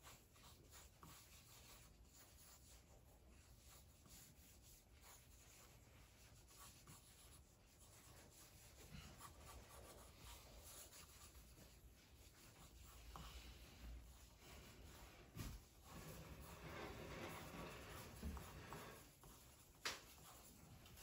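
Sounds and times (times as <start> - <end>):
pencil scratching on paper: 0.0 - 21.0.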